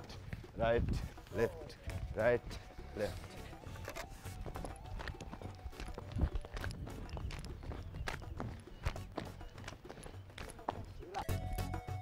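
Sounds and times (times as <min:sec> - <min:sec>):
feet stamping on dirt: 0:00.0 - 0:11.3.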